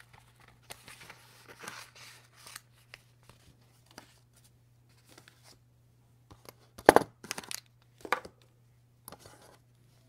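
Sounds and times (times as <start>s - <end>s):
paper rustling: 0.0s - 5.6s.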